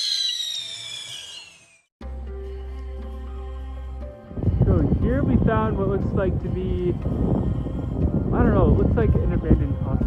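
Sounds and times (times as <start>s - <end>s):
high whistling tone falling in pitch: 0.0s - 1.9s.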